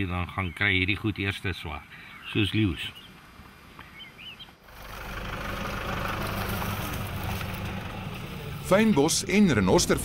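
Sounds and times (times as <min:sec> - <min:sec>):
truck engine driving on dirt track: 0:04.7 - 0:10.0.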